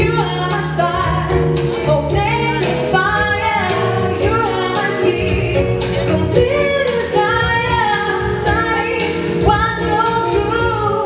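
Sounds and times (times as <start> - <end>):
steady bass: 0.0 - 11.0
woman singing into a microphone: 0.0 - 11.0.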